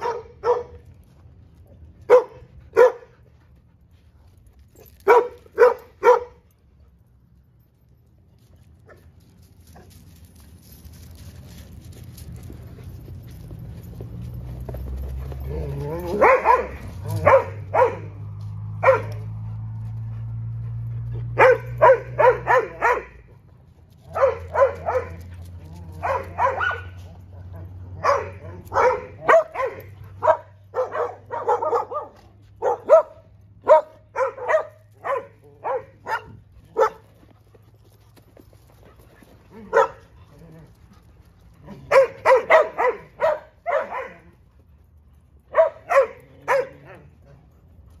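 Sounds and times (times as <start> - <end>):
dogs barking: 0.0 - 0.8, 2.0 - 3.2, 5.0 - 6.4, 15.4 - 18.2, 18.8 - 19.5, 21.2 - 23.3, 24.1 - 37.1, 39.6 - 40.1, 41.7 - 44.3, 45.5 - 47.1.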